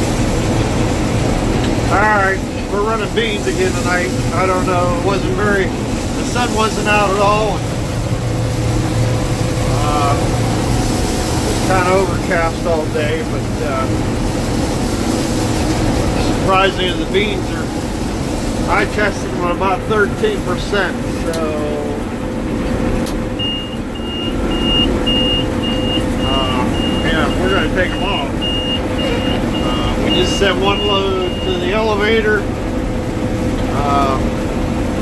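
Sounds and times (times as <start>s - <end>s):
combine harvester drone: 0.0s - 35.0s
person speaking: 1.9s - 7.7s, 9.7s - 10.4s, 11.4s - 14.0s, 16.1s - 17.8s, 26.3s - 28.4s, 29.0s - 32.4s
electronic alarm beeping: 23.4s - 31.7s.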